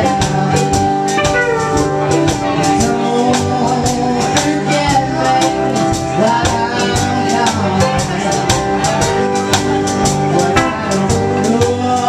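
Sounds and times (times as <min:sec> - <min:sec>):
percussion beat: 0:00.0 - 0:04.5, 0:07.0 - 0:12.0
guitar: 0:00.0 - 0:12.0
live country band playing: 0:00.0 - 0:12.0.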